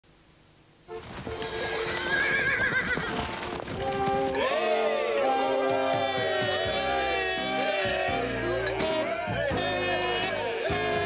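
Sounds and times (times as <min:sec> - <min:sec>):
background music sustained notes: 0:00.9 - 0:11.0
horse whinnying: 0:01.2 - 0:11.0.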